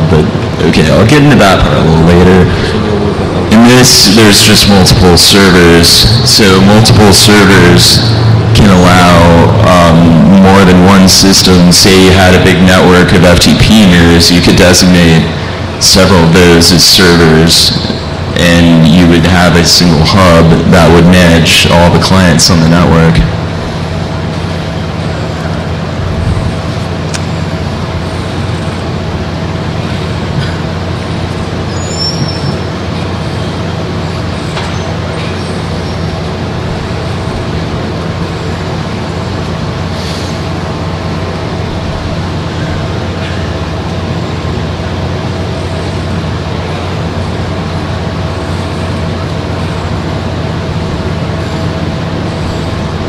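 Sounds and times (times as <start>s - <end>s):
steady low hum: 0.0s - 53.0s.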